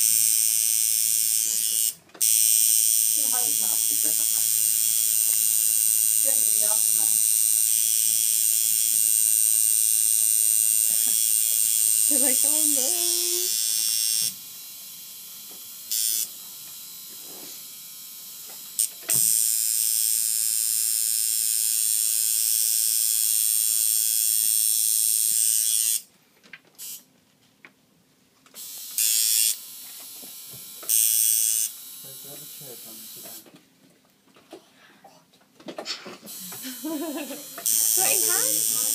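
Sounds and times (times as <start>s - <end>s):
tattoo machine buzzing: 0.0s - 26.1s, 26.8s - 27.1s, 28.6s - 33.5s, 36.3s - 38.9s.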